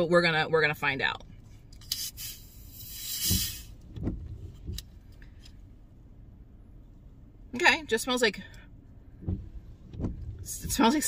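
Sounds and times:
gas hissing: 1.9 - 3.8.

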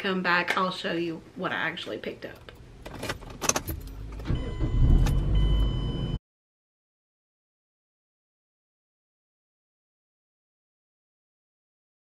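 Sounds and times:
car keys jangling and clicking: 2.4 - 4.4
car engine starting and rumbling: 2.4 - 6.2.

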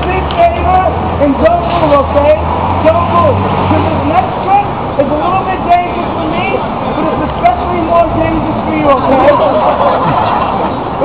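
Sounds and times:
people talking: 0.0 - 10.4
city street traffic rumble: 0.0 - 11.0.

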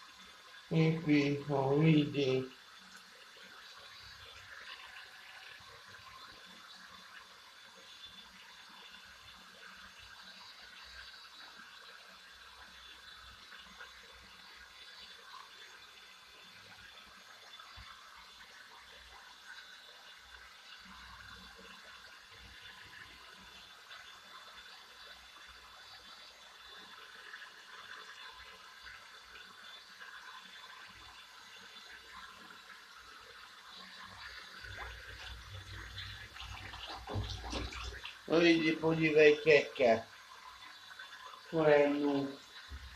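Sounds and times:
water running into bath: 0.0 - 42.9.

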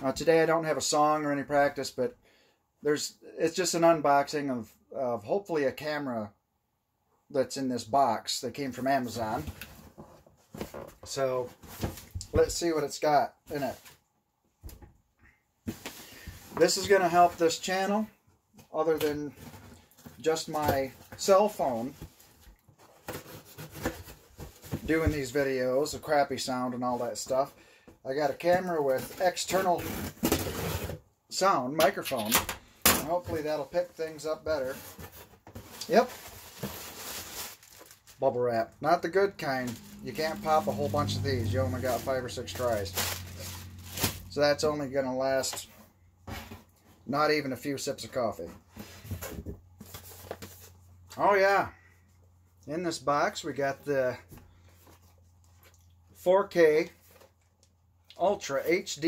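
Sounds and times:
man talking: 0.0 - 2.1, 2.8 - 6.3, 7.3 - 9.5, 11.1 - 11.5, 12.2 - 13.8, 16.6 - 18.1, 18.7 - 19.4, 20.2 - 22.0, 24.8 - 29.9, 31.3 - 34.8, 35.8 - 36.2, 38.2 - 43.0, 44.3 - 45.8, 47.1 - 48.6, 51.1 - 51.8, 52.6 - 54.2, 56.2 - 57.0, 58.1 - 59.0
plastic packing rustling on cardboard: 18.6 - 25.6, 33.0 - 44.7
packaging rustling: 34.6 - 40.9, 41.8 - 44.4.

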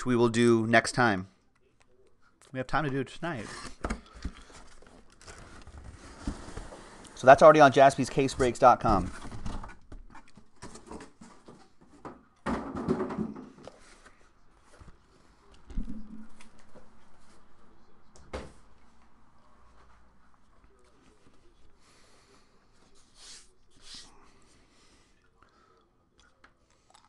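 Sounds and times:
cardboard boxes scraping: 5.4 - 7.1.

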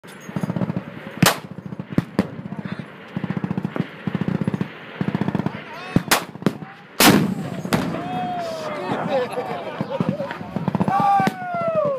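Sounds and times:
howitzer blast with rumbling tail: 0.3 - 11.9
single gunshots: 1.2 - 2.3, 3.2 - 8.1
machine guns firing bursts: 3.1 - 6.4.

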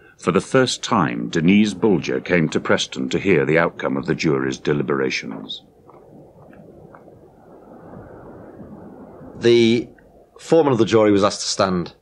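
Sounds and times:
distant traffic rumble: 0.0 - 11.8.

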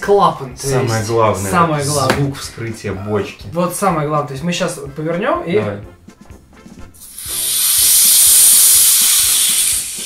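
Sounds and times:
pressurised gas hissing: 7.0 - 10.0.

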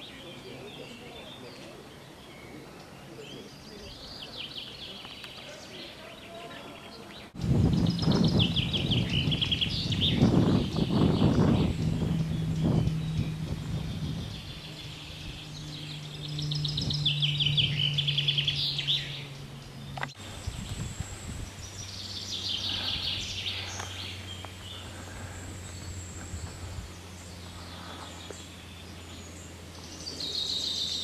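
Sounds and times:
birds chirping trills: 0.0 - 31.0
low rumbling noise: 6.8 - 31.0
steady low hum: 7.2 - 31.0.

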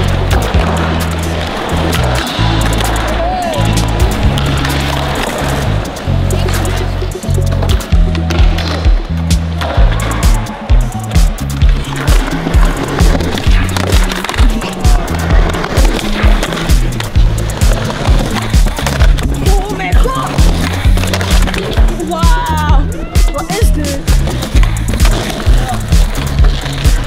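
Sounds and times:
skateboard clacks and landings: 0.0 - 3.1
music with heavy bass beat: 0.0 - 27.0
skateboard wheels rolling on concrete: 0.0 - 27.0.

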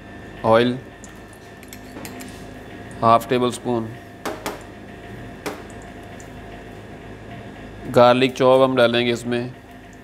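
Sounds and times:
kitchen mechanical hum: 0.0 - 10.0.

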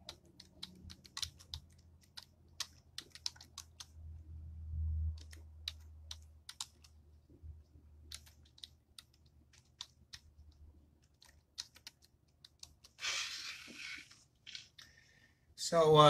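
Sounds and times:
typing on computer keyboard: 0.0 - 4.0, 5.1 - 7.0, 8.1 - 13.0.

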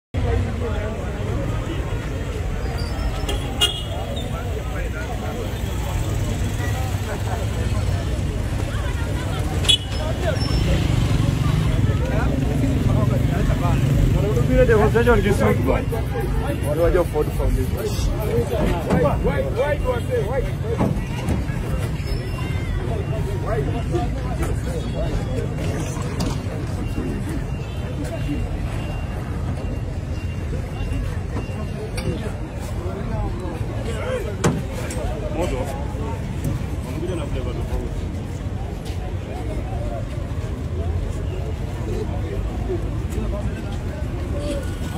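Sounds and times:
traffic rumble: 0.1 - 44.9
people's voices: 0.2 - 44.9.

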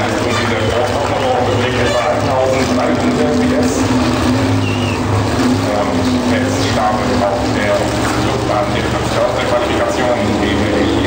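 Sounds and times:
announcer over loudspeakers: 0.0 - 4.2
drag car engines droning: 0.0 - 11.0.

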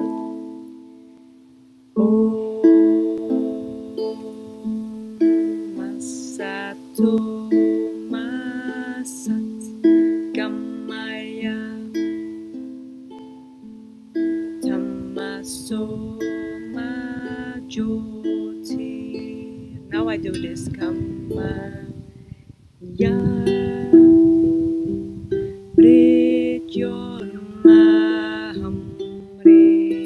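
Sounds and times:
person singing softly: 0.0 - 30.0
ukulele finger-picked: 0.0 - 30.0.

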